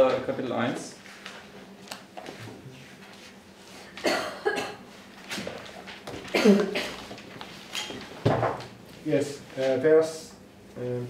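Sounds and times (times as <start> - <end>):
person coughing: 4.0 - 4.8, 6.3 - 7.0.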